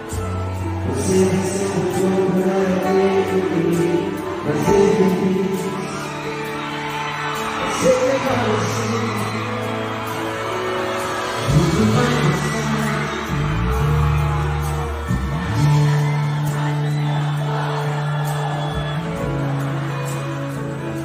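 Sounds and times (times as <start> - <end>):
crowd cheering and whooping: 0.0 - 21.0
live band music: 0.0 - 21.0.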